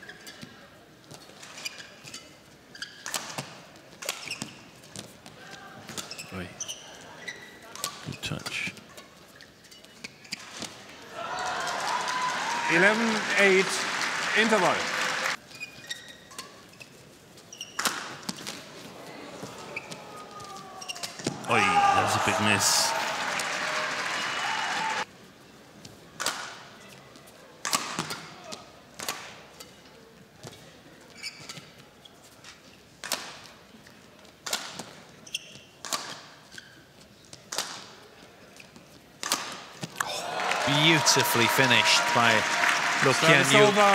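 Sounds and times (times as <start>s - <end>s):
shoes squeaking on court: 0.0s - 10.9s, 15.3s - 21.5s, 30.4s - 32.9s, 34.7s - 37.5s, 38.5s - 39.2s
crowd applause and cheering: 11.1s - 15.4s, 21.3s - 25.1s, 40.0s - 43.9s
racket hitting shuttlecock: 27.6s - 28.4s, 39.2s - 40.1s.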